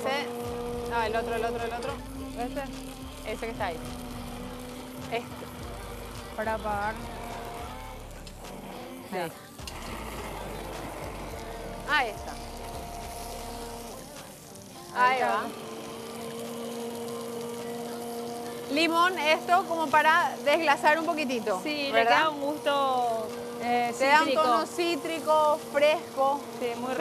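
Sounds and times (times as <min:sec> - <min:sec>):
immersion blender motor humming: 0:00.0 - 0:27.0.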